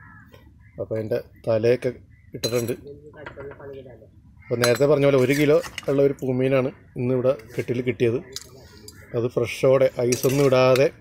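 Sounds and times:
metal ladle scraping cooking pots: 4.6 - 6.2, 9.8 - 10.9.

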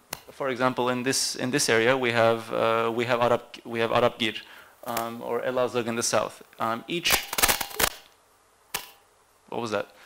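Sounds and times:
sharp cracks or pops: 7.1 - 9.0.

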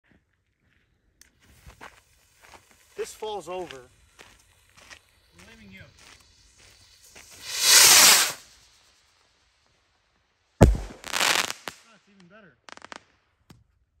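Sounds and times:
short hiss: 1.3 - 9.2, 10.6 - 12.0
rocket firework whoosh: 5.2 - 9.2, 10.6 - 11.8
firework bang: 7.4 - 8.4, 10.6 - 11.7.

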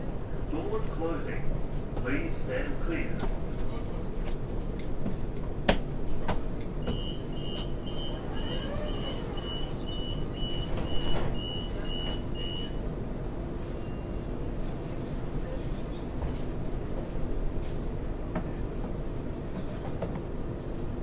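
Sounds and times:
train carriage hum: 0.0 - 21.0
train door warning beeps: 6.8 - 12.8.

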